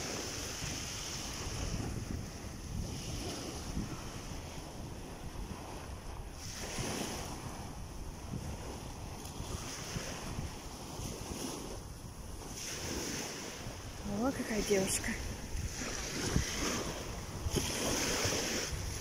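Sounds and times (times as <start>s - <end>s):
small waves washing on sand: 0.0s - 19.0s
wind buffeting microphone: 0.0s - 19.0s.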